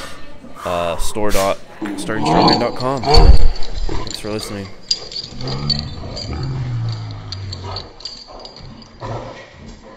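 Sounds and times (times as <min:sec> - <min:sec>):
dog growling: 0:01.8 - 0:09.9.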